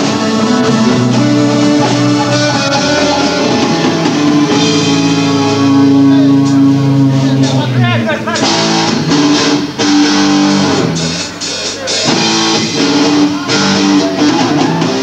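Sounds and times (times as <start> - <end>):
bending guitar note: 0.0 - 11.0
live rock band playing: 0.0 - 15.0.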